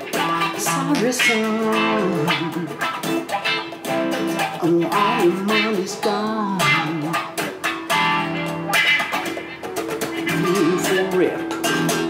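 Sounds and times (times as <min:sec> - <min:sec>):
guitar strumming chords: 0:00.0 - 0:12.0
man singing: 0:00.3 - 0:03.0, 0:04.5 - 0:07.4, 0:10.3 - 0:11.6.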